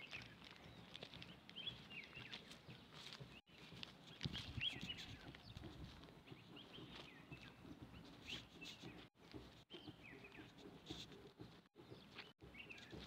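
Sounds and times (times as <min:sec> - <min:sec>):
footsteps on dry grass: 0:00.0 - 0:13.0
small birds chirping: 0:00.0 - 0:13.0.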